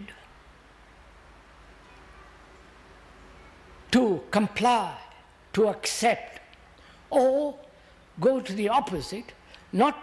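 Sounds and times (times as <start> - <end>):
faint steady hiss: 0.0 - 10.0
man speaking: 3.9 - 6.5, 7.1 - 10.0.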